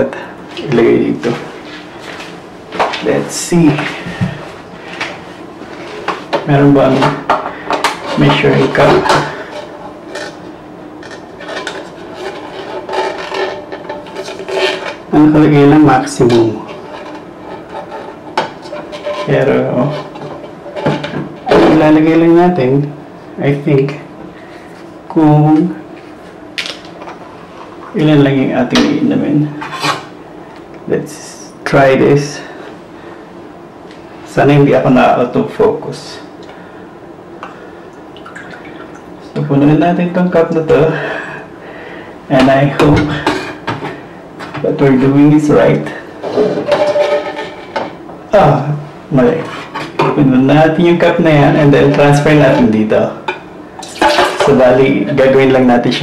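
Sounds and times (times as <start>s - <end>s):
plastic scraping against machine: 11.0s - 15.0s
water dribbling into a cup: 38.2s - 39.1s.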